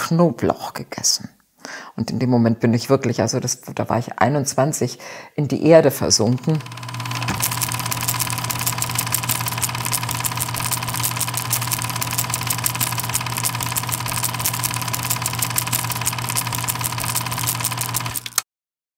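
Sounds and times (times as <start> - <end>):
machine running with rattling: 6.3 - 18.4.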